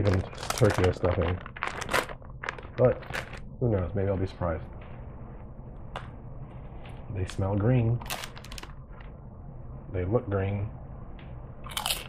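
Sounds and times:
crisp packet crinkling: 0.0 - 3.5, 8.0 - 9.1.

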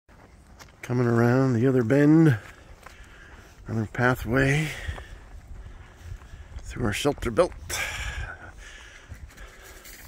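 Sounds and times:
footsteps crunching dry leaves: 0.1 - 10.0.

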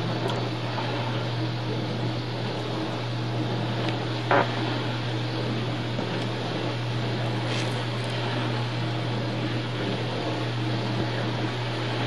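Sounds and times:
constant hiss: 0.0 - 12.0
steady low hum: 0.0 - 12.0.

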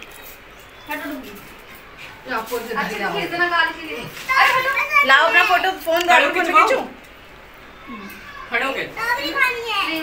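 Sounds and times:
children chattering and calling out: 0.8 - 10.0.

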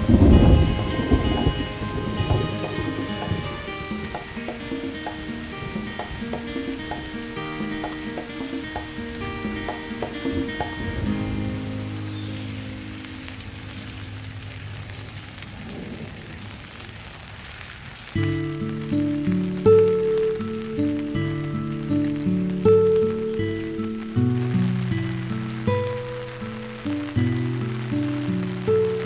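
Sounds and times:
soft background music: 0.0 - 14.6
rain on foliage and paving: 0.0 - 29.0.

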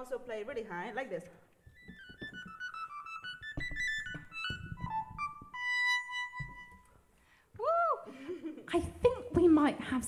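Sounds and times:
electronic wind instrument bass notes: 2.4 - 6.9.

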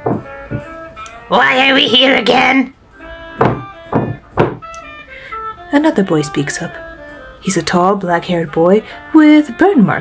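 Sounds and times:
table being banged: 0.0 - 0.8, 3.4 - 4.7
background music: 0.0 - 10.0.

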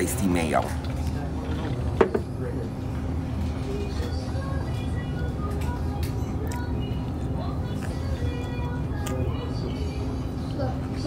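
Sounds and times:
faint background music: 0.0 - 11.0
low room hum: 0.0 - 11.0.

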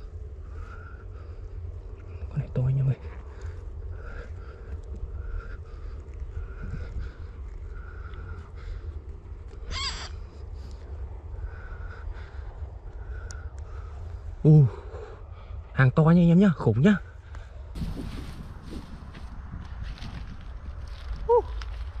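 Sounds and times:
wind rumble on microphone: 0.0 - 22.0.

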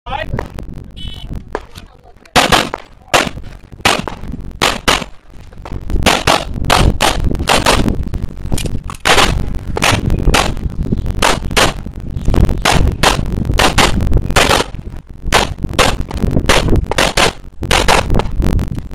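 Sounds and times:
handgun shots: 2.4 - 5.1.

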